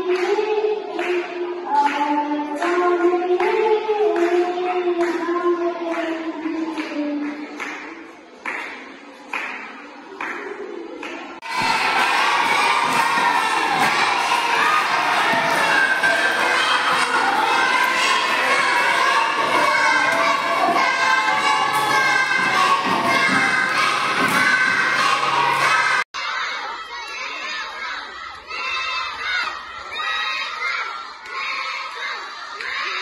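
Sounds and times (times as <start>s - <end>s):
children shouting and cheering: 0.0s - 8.6s, 9.3s - 33.0s
crowd noise: 0.0s - 33.0s.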